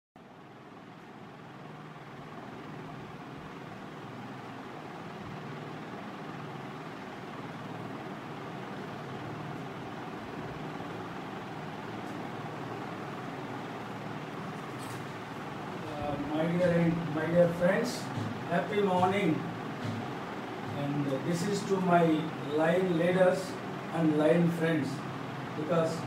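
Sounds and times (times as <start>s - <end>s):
steady drone with low hum: 0.2s - 26.0s.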